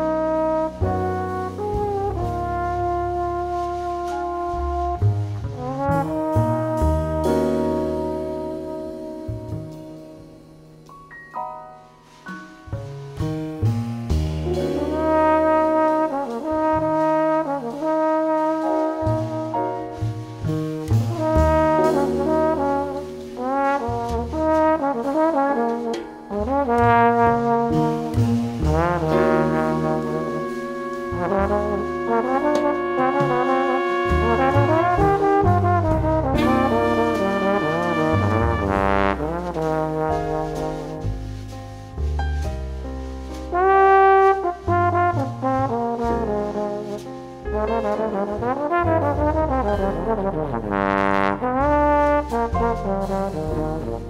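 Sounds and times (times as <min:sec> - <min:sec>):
drums played with brushes: 0:00.0 - 0:10.8, 0:11.9 - 0:54.0
trombone melody: 0:00.0 - 0:11.0, 0:13.6 - 0:54.0
bass: 0:00.0 - 0:54.0.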